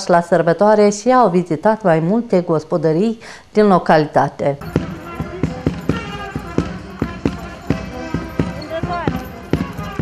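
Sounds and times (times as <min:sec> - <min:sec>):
voices: 0:00.0 - 0:10.0
folk music: 0:04.6 - 0:10.0
hooves clip-clopping on pavement: 0:04.6 - 0:10.0.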